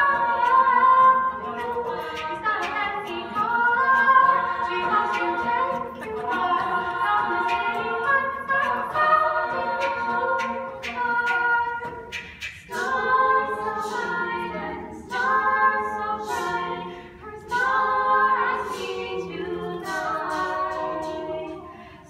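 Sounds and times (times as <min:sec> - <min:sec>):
a cappella group singing: 0:00.0 - 0:22.0.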